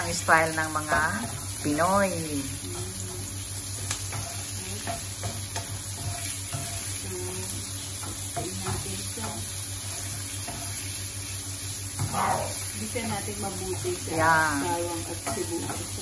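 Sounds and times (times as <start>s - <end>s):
meat sizzling in a wok: 0.0s - 16.0s
spatula scraping and tapping pan: 3.6s - 16.0s.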